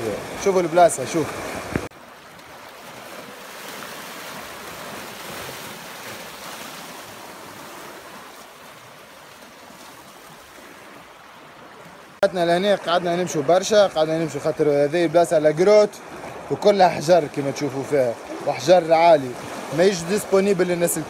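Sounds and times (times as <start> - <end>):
waves washing against rocks: 0.0 - 11.1.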